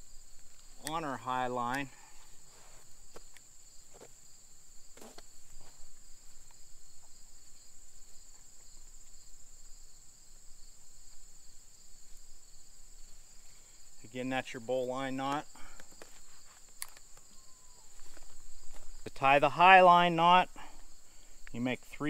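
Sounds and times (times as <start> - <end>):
insects chirping: 0.0 - 22.0.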